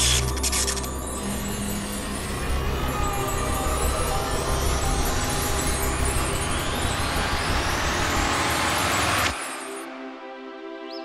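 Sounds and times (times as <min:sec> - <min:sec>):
sustained music notes: 0:00.0 - 0:10.8.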